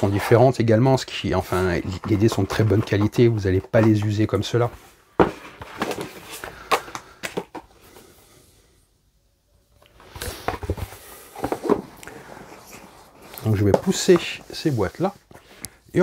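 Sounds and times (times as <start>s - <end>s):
cardboard boxes knocking on table: 5.2s - 6.1s.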